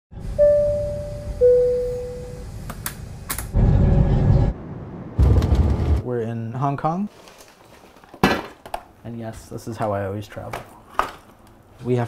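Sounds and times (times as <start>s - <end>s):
descending two-note chime: 0.4s - 2.5s
bursts of rumbling noise: 3.1s - 6.1s.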